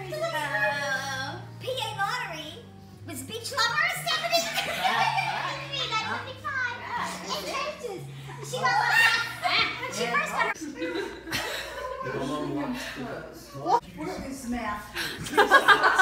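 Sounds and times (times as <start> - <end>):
lively voices and laughter: 3.1 - 16.0.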